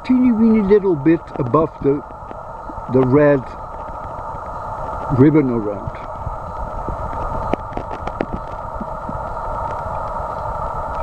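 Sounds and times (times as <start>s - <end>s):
steady midrange hum: 0.0s - 11.0s
wind rumble on microphone: 0.0s - 11.0s.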